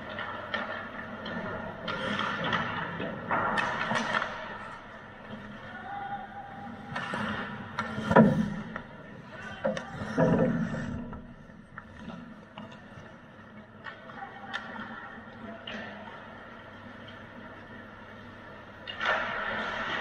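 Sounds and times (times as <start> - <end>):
hockey sticks and puck clacking: 0.0 - 6.0, 6.6 - 16.4, 18.8 - 20.0.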